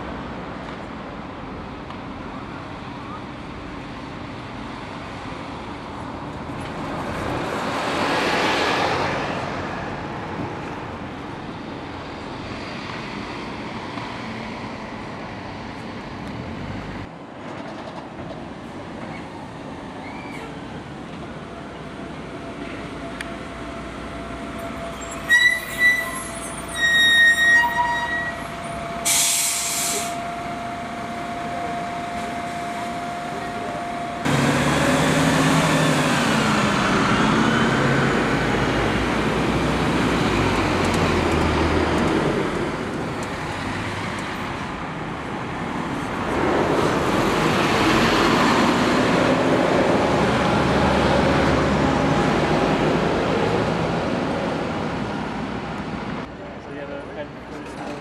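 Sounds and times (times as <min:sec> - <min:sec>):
diesel bus engines pulling away: 0:19.9 - 0:56.3
bus brakes squealing: 0:20.0 - 0:20.6, 0:24.5 - 0:34.2
air brake hiss: 0:29.0 - 0:30.2.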